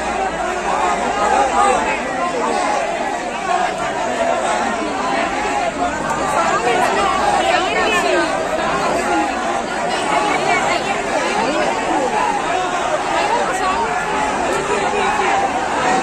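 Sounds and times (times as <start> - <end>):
crowd voices talking and calling: 0.0 - 16.0.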